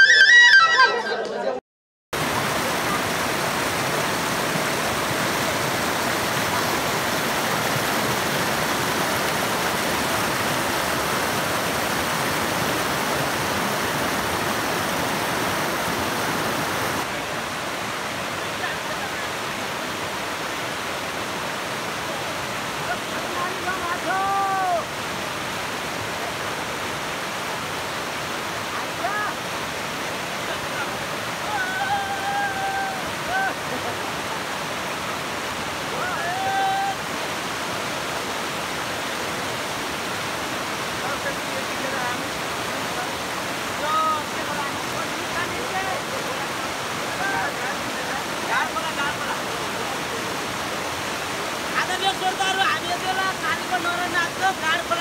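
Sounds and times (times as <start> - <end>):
voices calling out: 0.0 - 1.6
river rushing over stones: 2.2 - 55.0.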